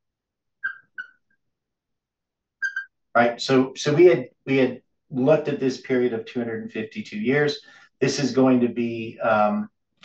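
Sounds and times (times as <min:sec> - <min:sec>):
marker squeaking on whiteboard: 0:00.6 - 0:01.2, 0:02.6 - 0:03.0.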